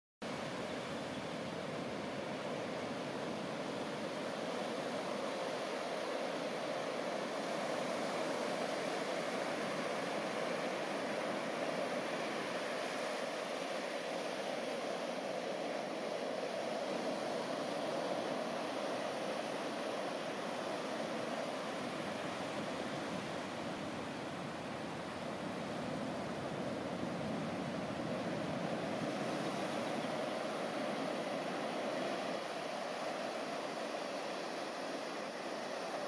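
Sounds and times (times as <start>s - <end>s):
ocean surf breaking: 0.3s - 36.0s.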